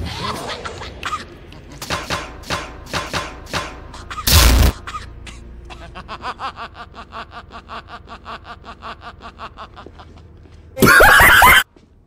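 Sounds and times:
man snickering laugh: 5.7s - 11.6s.

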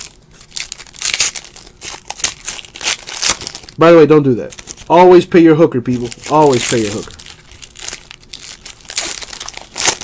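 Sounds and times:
foil wrapper crinkling: 0.0s - 5.2s, 5.8s - 10.0s.

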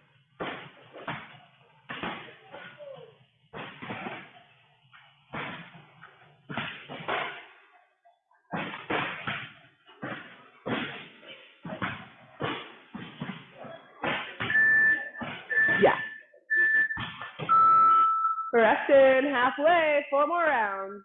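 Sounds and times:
interval timer beeping: 14.4s - 19.2s.

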